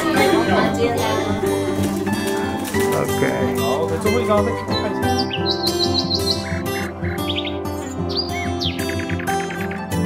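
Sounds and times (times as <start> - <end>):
background music: 0.0 - 10.0
birds chirping: 0.0 - 10.0.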